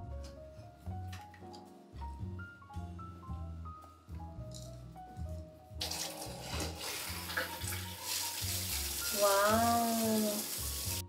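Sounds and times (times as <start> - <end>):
shower spraying onto tiles: 5.8 - 11.0.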